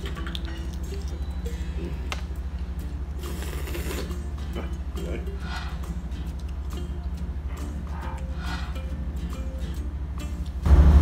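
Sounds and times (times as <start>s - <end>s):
wet chewing: 0.0s - 2.4s
ship engine throbbing hum: 4.2s - 11.0s.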